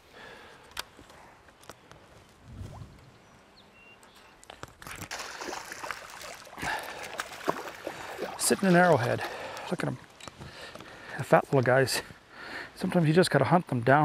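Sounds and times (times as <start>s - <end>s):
fish splashing in water: 4.8s - 8.8s.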